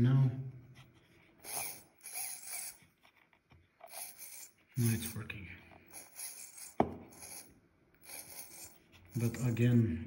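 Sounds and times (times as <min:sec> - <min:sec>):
servo gears whirring: 0:01.4 - 0:02.8, 0:03.9 - 0:05.2, 0:05.9 - 0:08.8.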